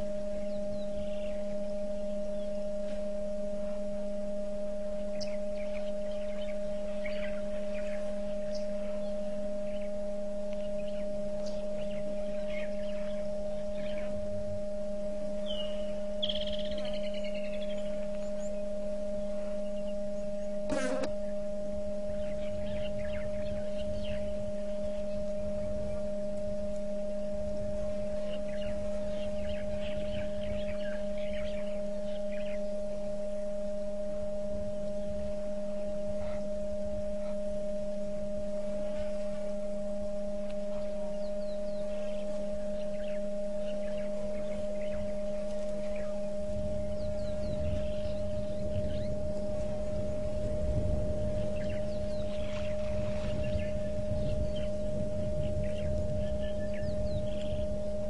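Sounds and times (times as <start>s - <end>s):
faint bird chirps: 0.0s - 4.1s, 4.8s - 58.0s
steady hum of tones: 0.0s - 58.0s.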